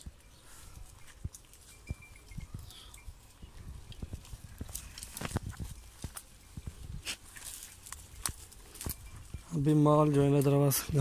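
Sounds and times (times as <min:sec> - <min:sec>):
dry stalks rustling and snapping: 0:00.0 - 0:11.0
footsteps through dry grass: 0:00.0 - 0:11.0.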